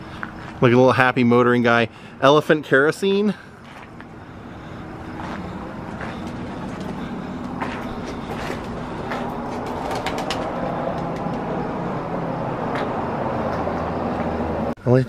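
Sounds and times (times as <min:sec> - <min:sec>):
vehicle engine running: 0:03.3 - 0:14.7.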